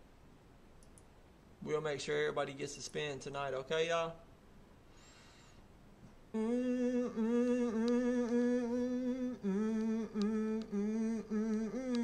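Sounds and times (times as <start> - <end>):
man humming a slow tune: 6.3 - 12.0.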